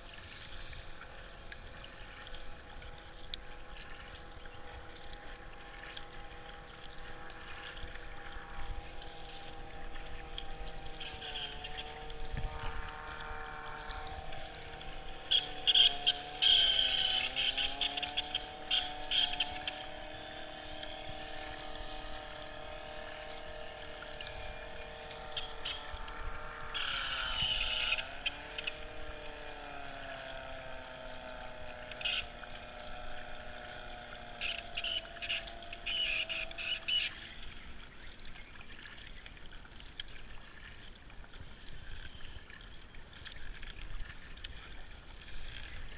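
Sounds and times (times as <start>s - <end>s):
powerboat engine whining: 0.1s - 39.2s.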